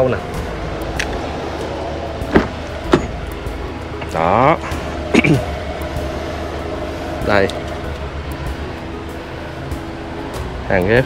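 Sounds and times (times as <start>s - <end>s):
background music: 0.0s - 11.0s
car door handle clicks: 2.3s - 3.2s.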